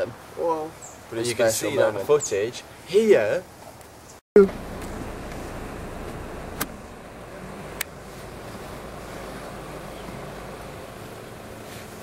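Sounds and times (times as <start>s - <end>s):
car engine idling: 4.4s - 12.0s.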